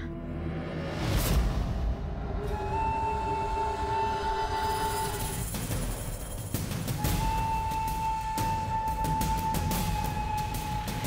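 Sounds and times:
low rumble: 0:00.0 - 0:06.6.

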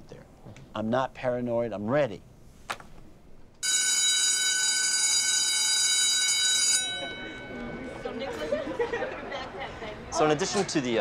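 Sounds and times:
electric school bell ringing: 0:03.6 - 0:09.4.

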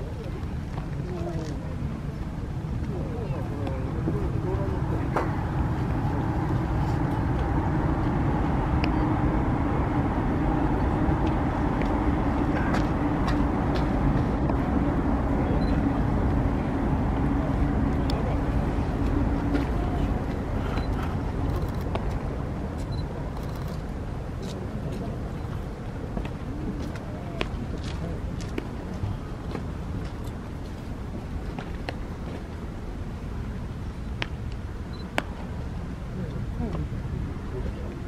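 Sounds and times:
low engine-like rumble: 0:00.0 - 0:38.0.

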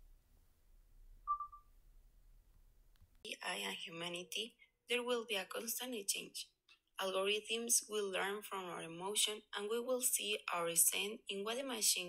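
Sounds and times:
short electronic beep: 0:01.3 - 0:01.6.

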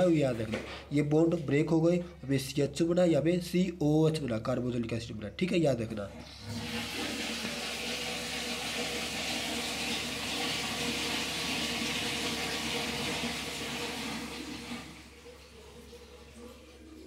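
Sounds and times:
water running: 0:05.9 - 0:17.0.

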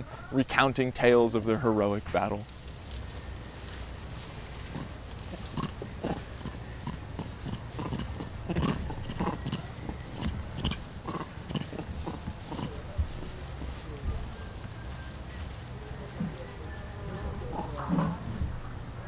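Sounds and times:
monkeys chattering: 0:03.1 - 0:19.0.

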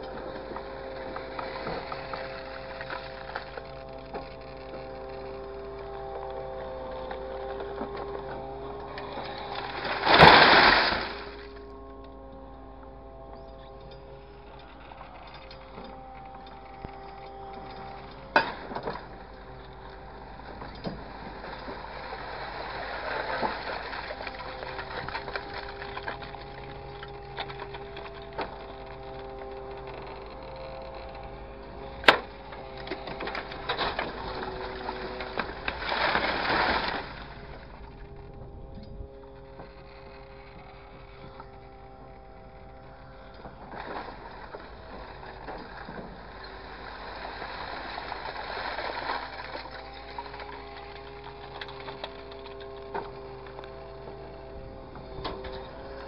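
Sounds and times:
small clicks: 0:00.0 - 0:10.3
loader engine and hydraulics humming: 0:00.0 - 0:56.0
grapple grinding into pile: 0:08.9 - 0:11.6, 0:32.0 - 0:37.8.

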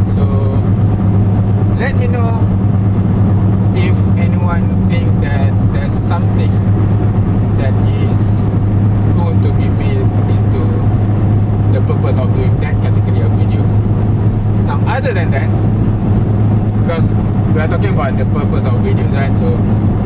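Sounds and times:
car engine drone: 0:00.0 - 0:20.0
road noise inside car: 0:00.0 - 0:20.0.

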